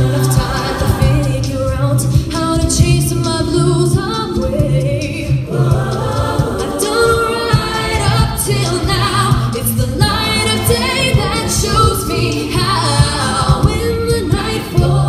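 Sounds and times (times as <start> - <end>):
a cappella group singing: 0.0 - 15.0.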